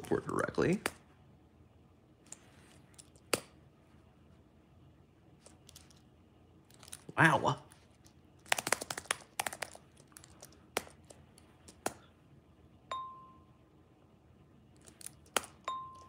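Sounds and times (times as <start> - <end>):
on-screen keyboard clicks: 8.4 - 12.0
short clear dings: 12.9 - 13.6.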